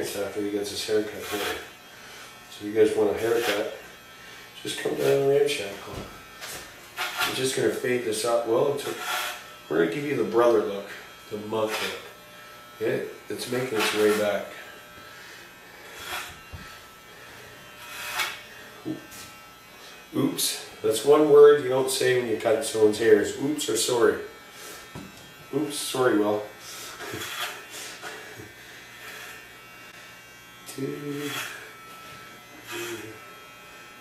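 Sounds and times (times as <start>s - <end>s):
electric hair clippers buzzing: 0.0s - 34.0s.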